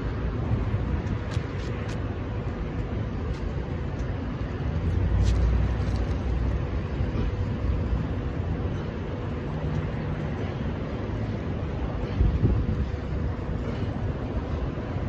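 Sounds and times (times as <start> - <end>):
road traffic: 0.0 - 15.0
wind on microphone: 12.0 - 13.8.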